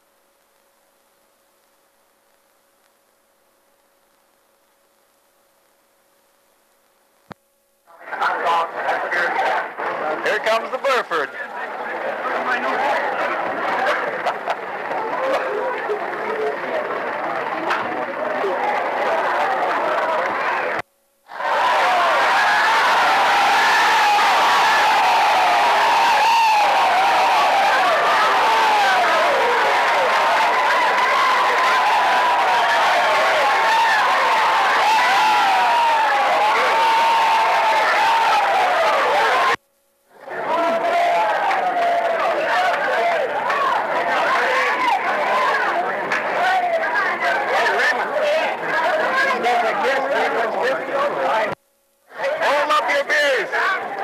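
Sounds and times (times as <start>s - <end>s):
crowd chattering and calling out: 7.9s - 54.0s.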